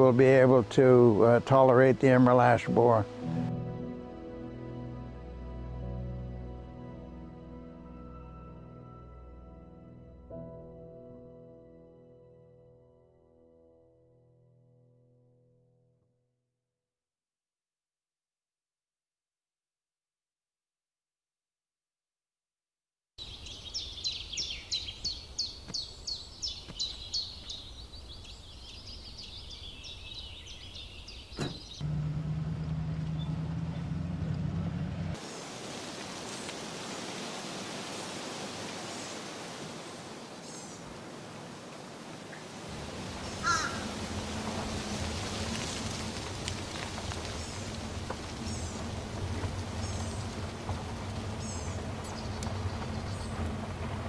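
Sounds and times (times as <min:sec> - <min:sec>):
bird chirps: 0:23.2 - 0:31.8
vehicle engine hum: 0:31.4 - 0:35.4, 0:42.6 - 0:54.0
bird calling in quick series: 0:43.2 - 0:43.9.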